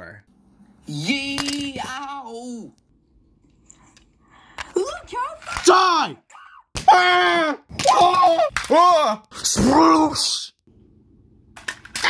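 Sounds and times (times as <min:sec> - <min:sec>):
person yelling in pain: 0:06.3 - 0:08.5.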